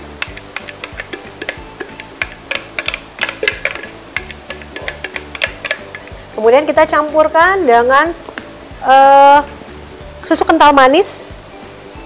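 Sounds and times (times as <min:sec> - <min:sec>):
spatula scraping plastic bowl: 0:00.0 - 0:06.2
background music with low beat: 0:00.0 - 0:12.0.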